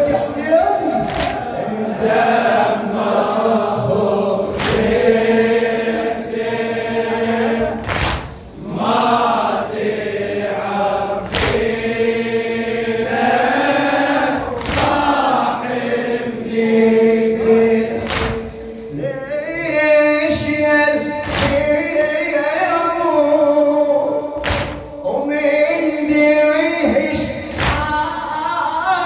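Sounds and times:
men chanting in unison: 0.0 - 7.9, 8.5 - 29.0
hands slapping chests: 1.0 - 1.5, 4.5 - 5.0, 7.8 - 8.5, 11.2 - 11.7, 14.5 - 15.1, 18.0 - 18.6, 21.2 - 21.6, 24.4 - 24.9.

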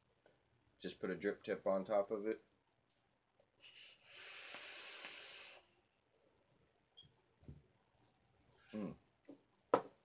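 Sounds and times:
hiss of air and vapour: 3.6 - 5.7
short breath: 3.6 - 5.7.

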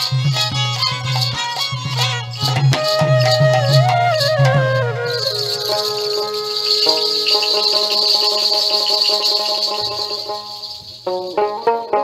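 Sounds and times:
drum beats: 0.0 - 12.0
folk band melody sliding downward: 0.0 - 12.0
sustained held notes: 2.3 - 12.0
steady high rattle: 5.1 - 12.0.

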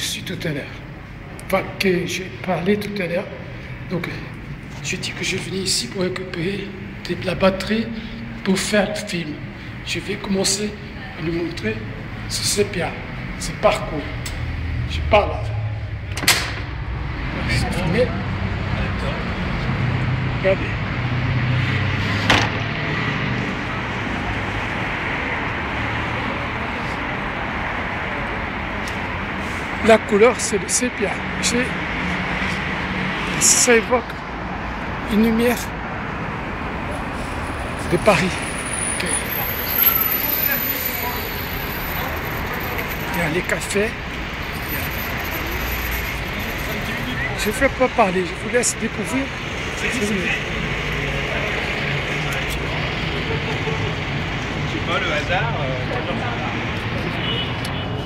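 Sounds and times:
low rumble of street traffic: 0.0 - 58.0.

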